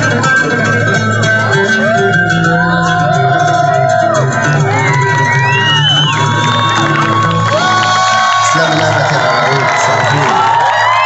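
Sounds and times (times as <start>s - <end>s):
live band music: 0.0s - 11.0s
crowd cheering and whooping: 1.5s - 11.0s.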